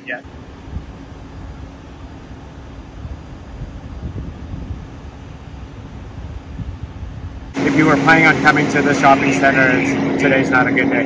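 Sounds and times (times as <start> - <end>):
low engine rumble: 0.0 - 11.0
wind buffeting microphone: 0.2 - 11.0.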